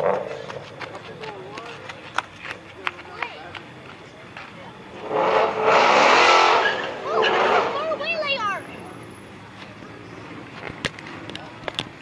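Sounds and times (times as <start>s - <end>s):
faint voices: 0.0s - 12.0s
car engine at full throttle: 4.9s - 8.0s.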